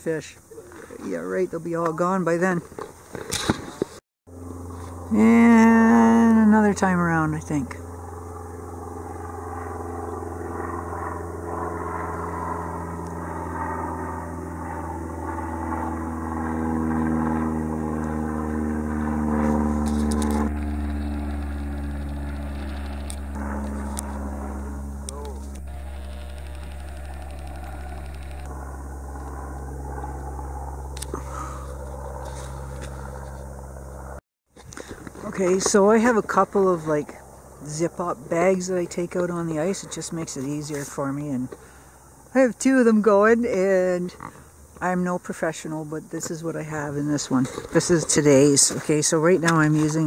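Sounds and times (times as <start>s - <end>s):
airplane engine droning: 0.0s - 50.0s.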